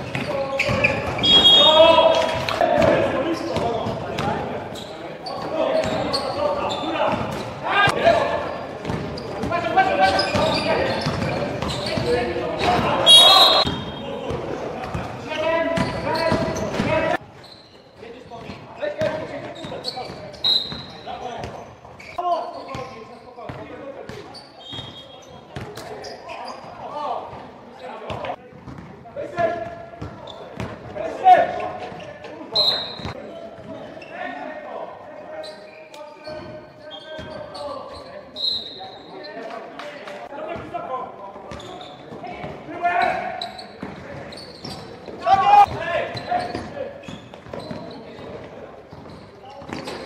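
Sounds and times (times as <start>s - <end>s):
basketball bouncing on court: 0.0s - 1.6s, 8.8s - 17.0s, 28.1s - 29.0s, 29.6s - 30.9s, 43.8s - 50.0s
players shouting: 11.8s - 14.4s, 45.2s - 46.7s
short high squeaks: 17.4s - 18.0s.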